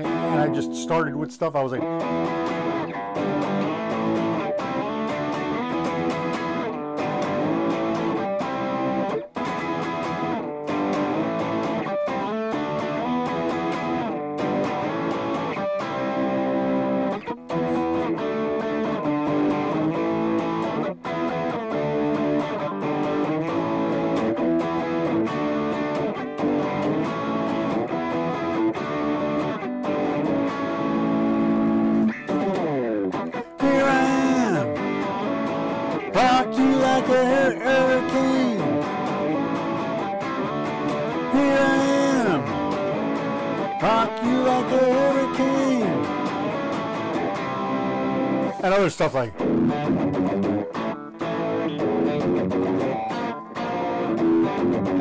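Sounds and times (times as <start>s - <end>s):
electric guitar rock riffs: 0.0s - 55.0s.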